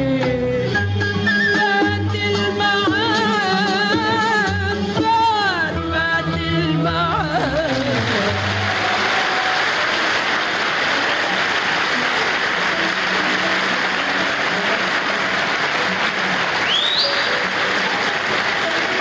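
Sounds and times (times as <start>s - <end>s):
person singing: 0.0s - 9.5s
audience applauding: 7.0s - 19.0s
rising call: 16.6s - 17.7s.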